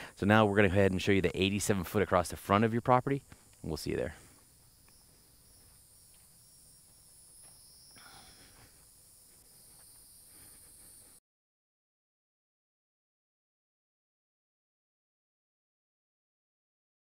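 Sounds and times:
insects droning: 0.0s - 11.2s.

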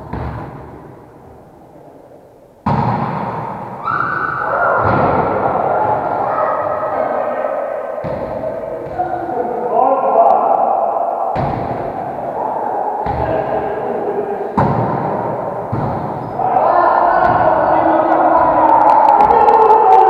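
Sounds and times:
volleyball thuds echoing: 0.0s - 1.0s, 2.6s - 6.9s, 8.0s - 9.3s, 11.3s - 12.3s, 13.0s - 13.7s, 14.6s - 16.4s, 17.1s - 19.5s.

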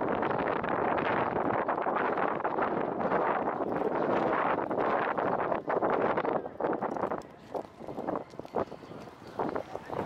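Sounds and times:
wind across microphone: 0.0s - 10.0s.

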